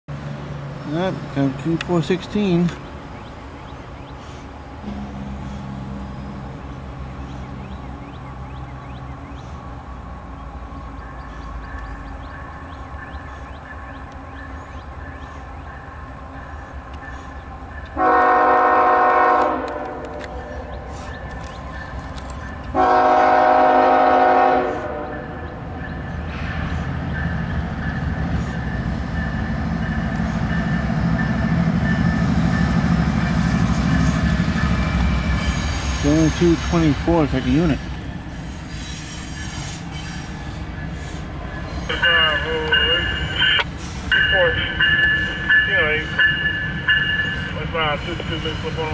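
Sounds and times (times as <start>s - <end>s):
approaching train noise: 0.1s - 48.9s
locomotive air horn blasts: 4.8s - 5.9s, 18.0s - 20.4s, 22.7s - 25.3s.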